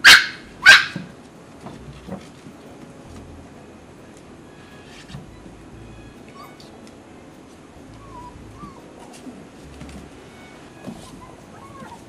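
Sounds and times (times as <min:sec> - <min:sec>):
puppy yapping: 0:00.0 - 0:01.1, 0:06.0 - 0:06.7, 0:07.9 - 0:09.3, 0:10.3 - 0:12.0.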